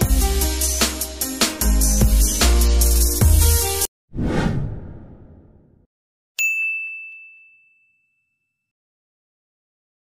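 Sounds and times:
whoosh: 0:04.1 - 0:05.8.

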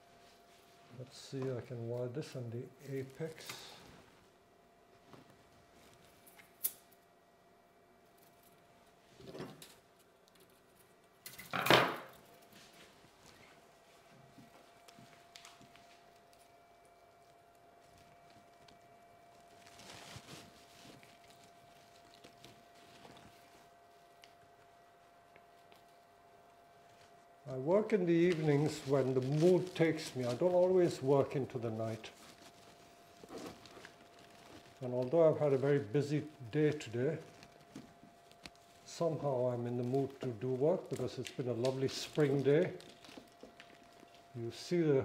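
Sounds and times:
faint steady hum: 0:00.0 - 0:45.0
rustling pine needles: 0:12.5 - 0:24.6, 0:26.8 - 0:44.8.

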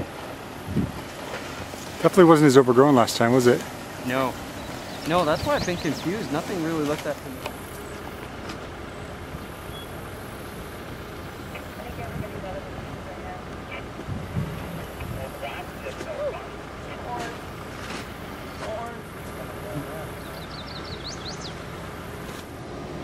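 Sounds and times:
engine running at low speed: 0:00.0 - 0:23.0.

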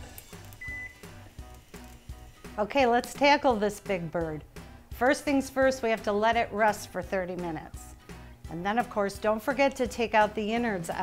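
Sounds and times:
background music: 0:00.0 - 0:11.0
short high oven beep: 0:00.6 - 0:01.0.

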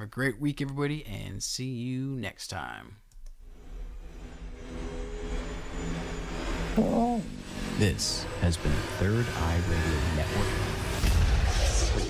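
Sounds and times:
low rumbling drone: 0:03.4 - 0:12.0.

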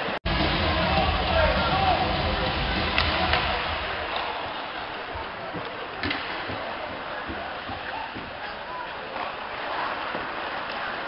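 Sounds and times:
arena crowd noise: 0:00.0 - 0:11.0
hockey sticks clacking on ice: 0:05.1 - 0:08.6.

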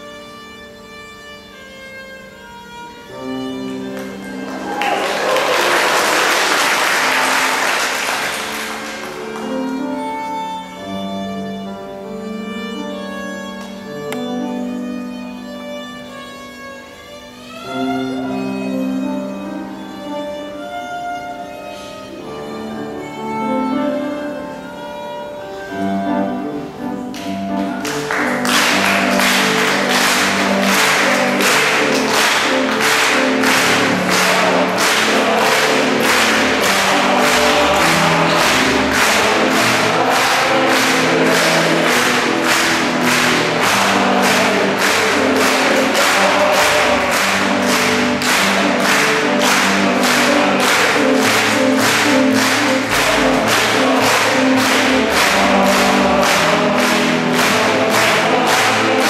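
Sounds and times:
string orchestra: 0:00.0 - 0:59.0
male choir singing: 0:27.5 - 0:59.0.

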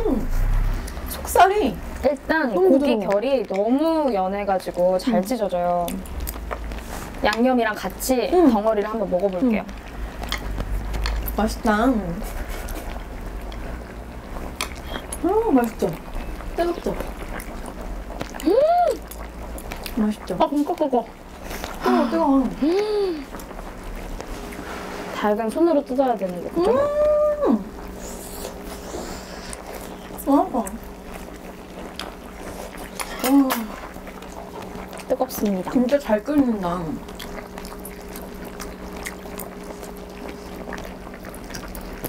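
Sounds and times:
low background hum: 0:00.0 - 0:42.0
person chewing: 0:05.8 - 0:07.1, 0:12.3 - 0:15.3, 0:16.2 - 0:20.0, 0:31.0 - 0:35.1, 0:37.0 - 0:42.0.

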